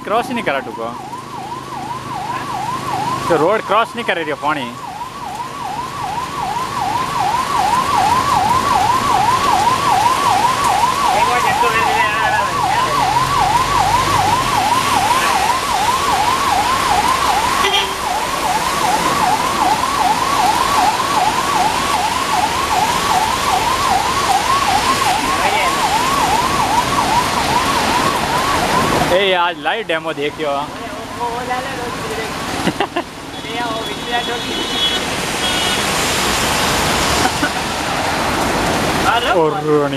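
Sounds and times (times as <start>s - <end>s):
electronic siren wailing: 0.0s - 32.1s.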